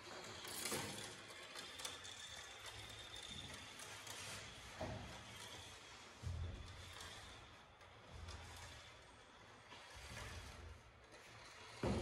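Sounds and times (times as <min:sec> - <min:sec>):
marble rolling on plastic track: 0:00.0 - 0:12.0.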